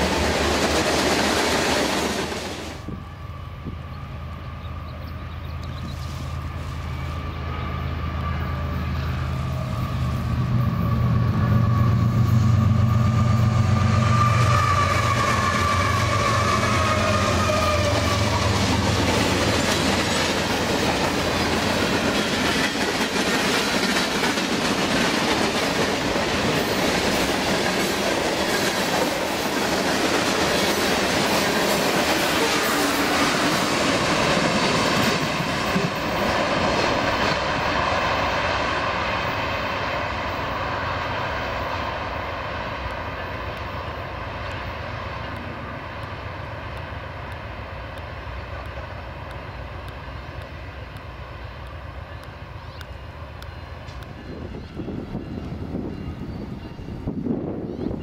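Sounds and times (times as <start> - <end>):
freight train cars rumbling past: 0.0 - 58.0.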